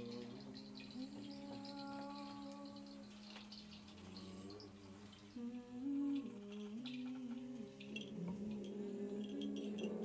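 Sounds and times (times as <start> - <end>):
light percussion ticks: 0.0 - 10.0
person humming a slow melody: 0.0 - 10.0.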